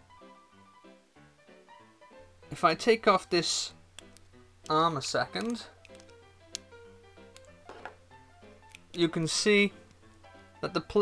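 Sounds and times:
soft background melody: 0.0s - 11.0s.

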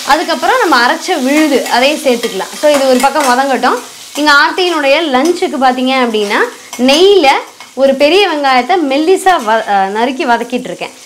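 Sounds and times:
food frying in oil: 0.0s - 11.0s.

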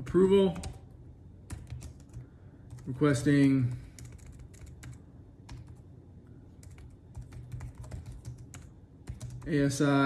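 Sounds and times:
typing on computer keyboard: 1.5s - 3.0s, 3.6s - 5.8s, 6.6s - 9.5s.

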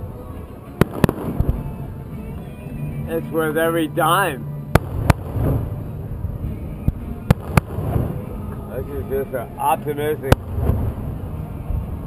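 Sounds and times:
fireworks bangs: 0.8s - 1.8s, 4.7s - 6.0s, 6.7s - 8.4s, 10.3s - 11.0s.

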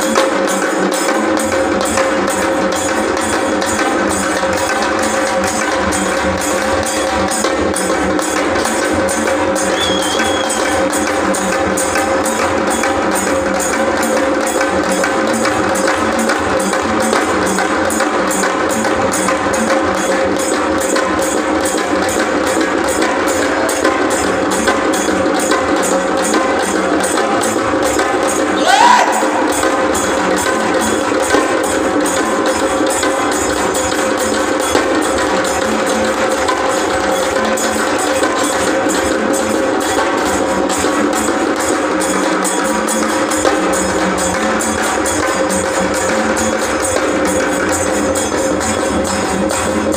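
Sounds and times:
barrel drum beating: 0.0s - 49.9s
frame drum beating fast: 0.0s - 49.9s.

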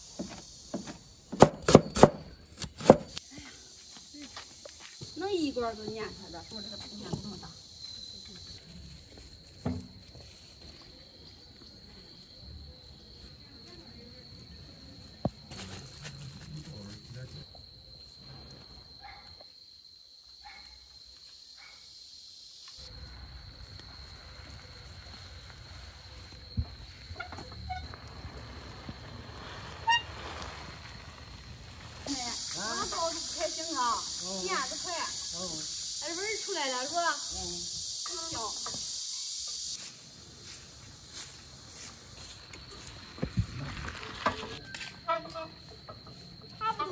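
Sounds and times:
insects trilling: 0.0s - 46.9s
high-pitched squeaks: 29.5s - 31.0s.

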